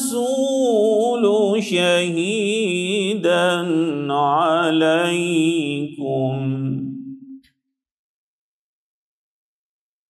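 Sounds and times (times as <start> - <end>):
man reciting melodically: 0.0 - 7.1.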